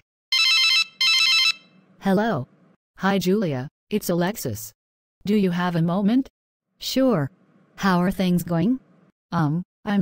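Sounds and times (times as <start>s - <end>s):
electronic telephone rings: 0.3s - 1.9s.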